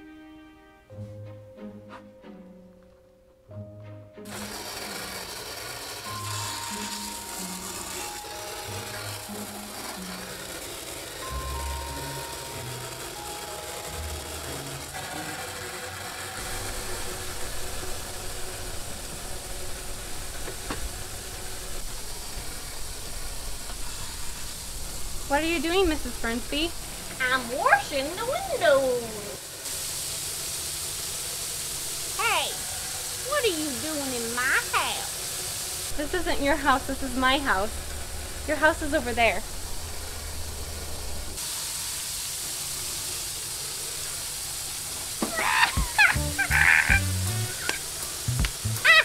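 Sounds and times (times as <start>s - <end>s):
playful background music: 0.0s - 16.2s, 45.7s - 49.0s
even hiss: 4.2s - 49.0s
woman shrieking: 45.2s - 47.8s.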